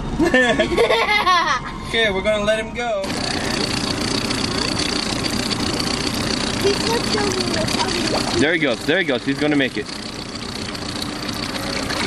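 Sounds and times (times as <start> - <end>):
boat motor idling: 3.0 - 12.0.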